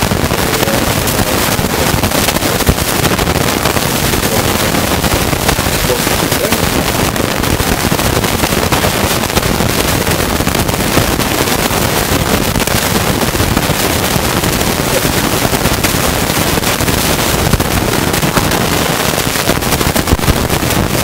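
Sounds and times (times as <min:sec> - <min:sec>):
loud crackling static: 0:00.0 - 0:21.0.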